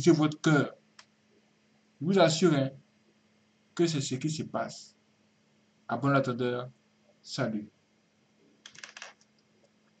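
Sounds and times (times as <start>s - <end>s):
computer keys clicking: 8.6s - 9.5s.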